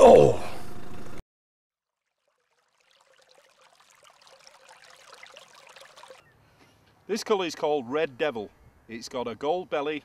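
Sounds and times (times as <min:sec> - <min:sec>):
faint crackling trickle: 0:01.8 - 0:06.3.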